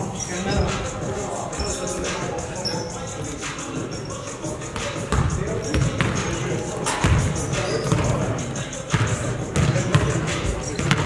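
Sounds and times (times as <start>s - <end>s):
shoe squeaks: 0.0s - 11.0s
basketball dribbling on hardwood: 5.1s - 6.2s, 8.9s - 10.2s, 10.8s - 11.0s.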